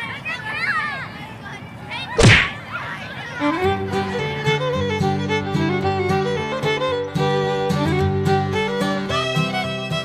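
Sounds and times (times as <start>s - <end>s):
whip-like kick swish: 2.2s - 2.6s.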